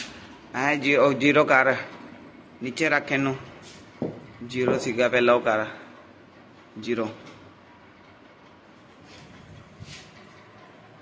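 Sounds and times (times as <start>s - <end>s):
man speaking: 4.4s - 5.8s.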